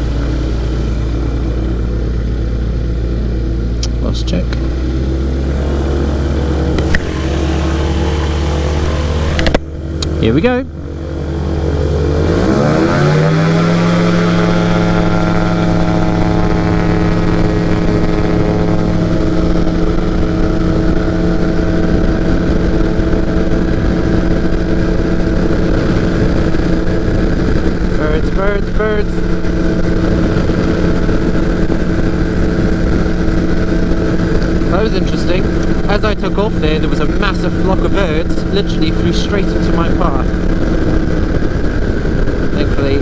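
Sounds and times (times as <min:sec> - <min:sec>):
microlight engine at full power: 0:00.0 - 0:43.0.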